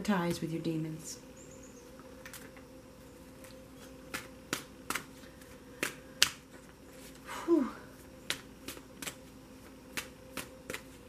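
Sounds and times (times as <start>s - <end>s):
cards being shuffled: 8.2s - 11.0s.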